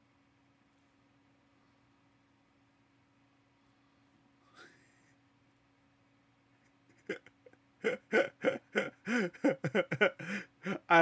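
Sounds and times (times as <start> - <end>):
man laughing: 6.9 - 11.0.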